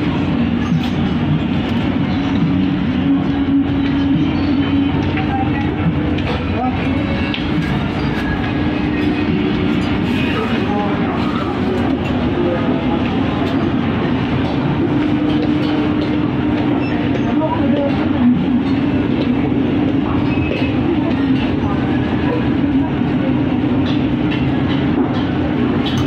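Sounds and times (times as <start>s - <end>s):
indistinct voices of shoppers: 0.0s - 26.0s
steady hum: 0.0s - 26.0s.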